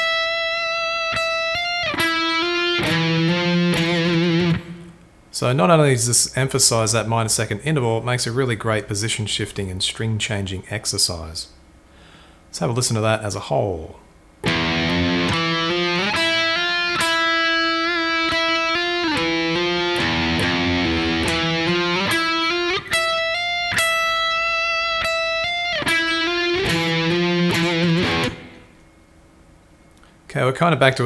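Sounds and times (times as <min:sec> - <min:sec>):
slow electric guitar riff: 0:00.0 - 0:05.1, 0:14.4 - 0:28.8.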